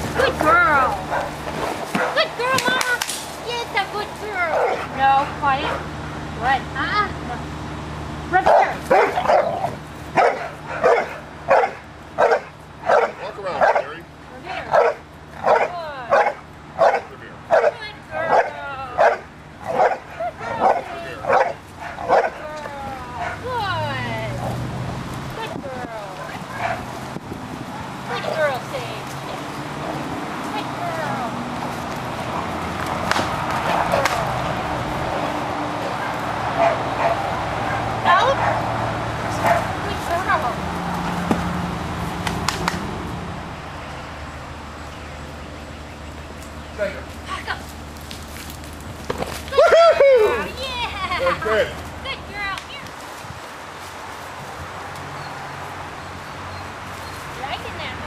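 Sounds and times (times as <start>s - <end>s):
dog barking: 1.1s - 2.3s, 4.5s - 4.9s, 8.4s - 14.0s, 14.7s - 22.4s, 23.2s - 23.4s, 26.5s - 26.9s, 36.0s - 38.7s, 39.3s - 39.7s.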